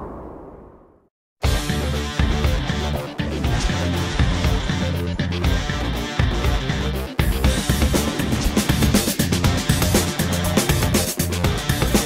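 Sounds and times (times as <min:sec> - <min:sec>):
rock music with guitar and drums: 0:01.4 - 0:12.0.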